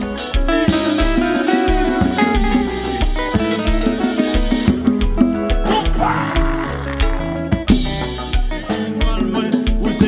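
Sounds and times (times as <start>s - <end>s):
band playing instrumental music: 0.0s - 10.0s.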